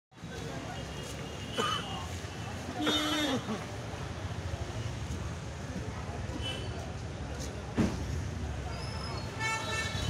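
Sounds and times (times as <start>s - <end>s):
voices in background: 0.2s - 10.0s.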